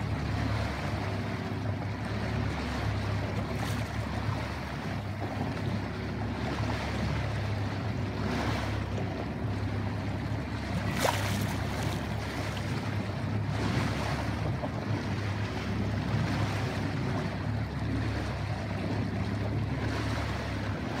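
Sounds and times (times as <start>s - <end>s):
boat engine humming: 0.0s - 21.0s
water rushing along hull: 0.0s - 21.0s
wind buffeting microphone: 0.0s - 21.0s.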